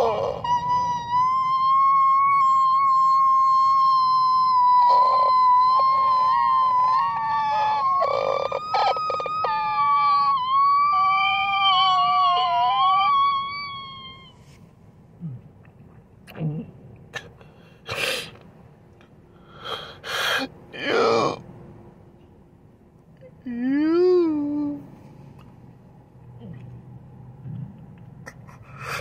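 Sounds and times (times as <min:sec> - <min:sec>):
man's falsetto wail: 0:00.0 - 0:14.4.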